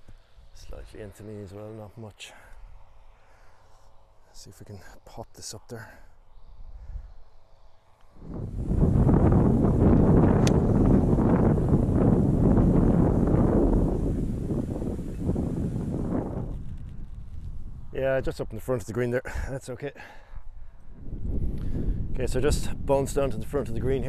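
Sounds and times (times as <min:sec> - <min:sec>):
wind buffeting microphone: 0:08.1 - 0:18.6, 0:20.4 - 0:24.0
golf club striking ball: 0:10.3 - 0:10.7.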